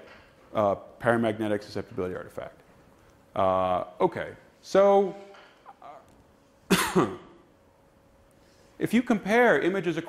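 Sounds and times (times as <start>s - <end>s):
faint steady hum: 0.0s - 10.0s
man coughing: 6.7s - 7.4s.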